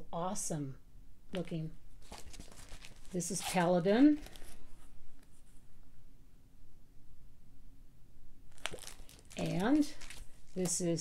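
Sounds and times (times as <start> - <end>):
low room hum: 0.0 - 11.0
plastic sleeves rustling: 1.3 - 5.6, 8.5 - 11.0
sharp plastic crinkle: 2.0 - 4.7, 8.5 - 11.0.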